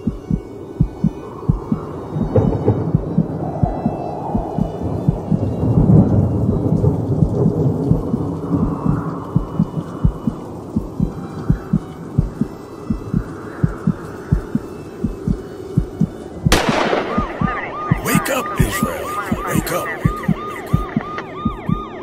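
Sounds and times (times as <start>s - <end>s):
pulse of low thumps: 0.0s - 6.0s
thunder-like rumbling noise: 1.6s - 12.4s.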